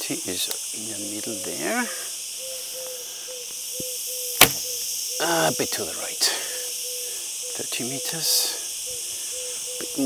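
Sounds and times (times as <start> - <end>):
steady high hiss: 0.0 - 10.0
bow string release crack: 3.8 - 4.7.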